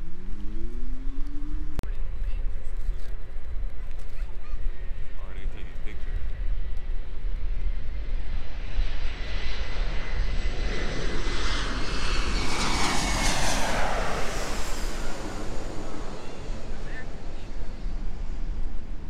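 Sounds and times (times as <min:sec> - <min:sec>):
jet airliner passing overhead: 0:00.0 - 0:19.0
jet engine whine: 0:00.0 - 0:19.0.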